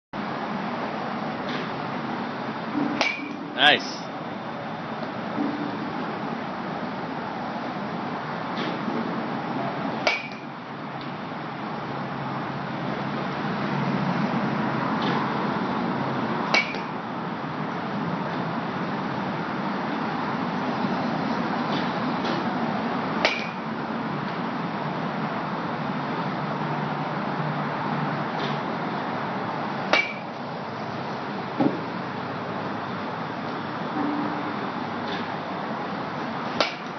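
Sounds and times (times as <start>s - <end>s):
bat hitting balls: 2.7s - 4.0s, 9.9s - 11.1s, 16.4s - 17.0s, 23.1s - 23.8s, 29.8s - 30.4s, 31.6s - 32.0s, 36.2s - 36.9s.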